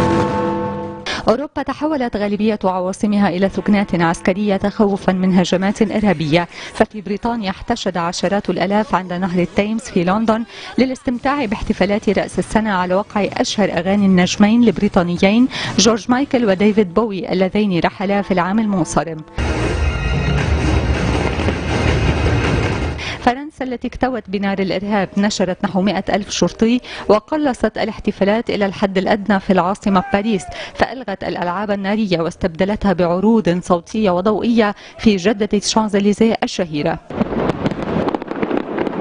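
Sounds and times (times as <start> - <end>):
deep low rumble: 18.1 - 23.0
fireworks crackling: 19.6 - 23.3, 37.1 - 39.0.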